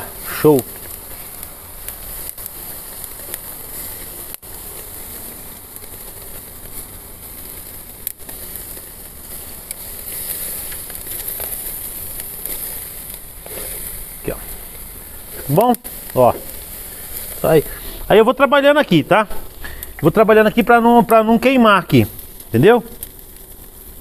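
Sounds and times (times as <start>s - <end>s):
meat sizzling on grill: 0.0s - 24.0s.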